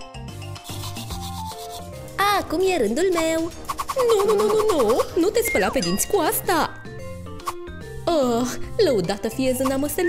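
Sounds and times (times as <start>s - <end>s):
soft background music: 0.0s - 10.0s
toothbrush bristles scrubbing: 0.6s - 1.9s.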